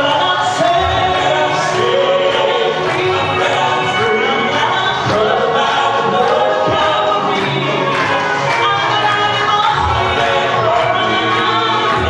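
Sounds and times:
gospel group singing in harmony: 0.0s - 12.0s.

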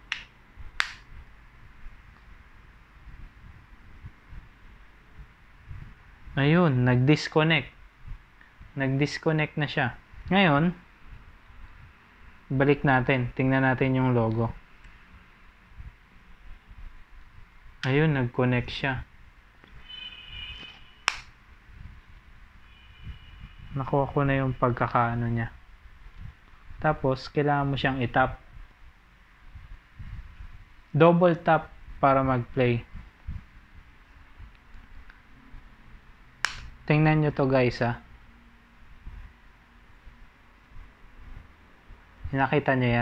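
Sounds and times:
faint high steady tones: 19.8s - 21.1s, 21.7s - 25.8s
sharp click: 20.6s - 21.4s, 36.4s - 36.7s.

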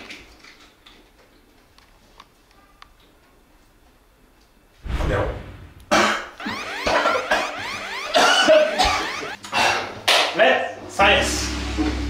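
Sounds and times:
rising swept tones: 6.4s - 9.4s.

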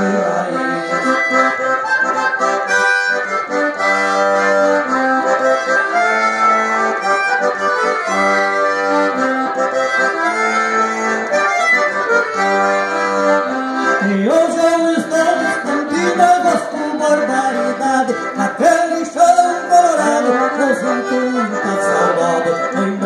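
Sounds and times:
man's voice: 0.0s - 1.6s, 13.8s - 23.0s
accordion folk melody: 0.0s - 23.0s.

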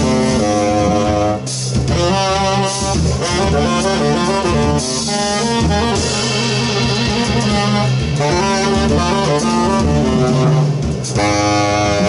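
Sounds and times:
double bass low notes: 0.0s - 12.0s
tenor saxophone: 0.0s - 12.0s.

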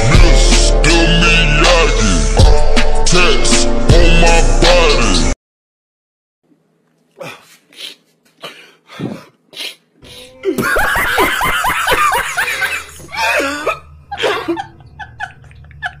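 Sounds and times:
breathy sobs: 7.2s - 10.8s, 12.4s - 14.7s
man laughing hysterically: 10.6s - 16.0s.

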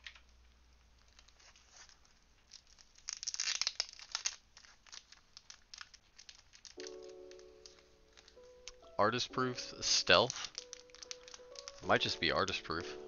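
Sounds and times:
rapid clicking and crinkling: 0.0s - 8.8s, 9.8s - 12.2s.

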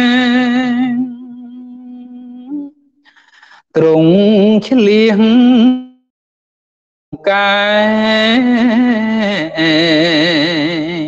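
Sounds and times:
person chanting: 0.0s - 2.8s, 7.2s - 11.0s.

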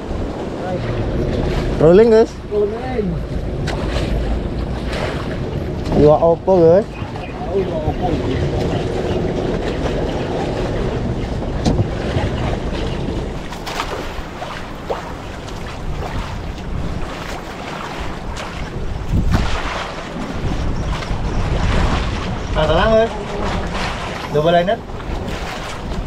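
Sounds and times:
choppy sea washing around boat: 0.0s - 26.0s
wind rushing over microphone: 0.0s - 26.0s
light knocks on boat: 11.6s - 12.3s.

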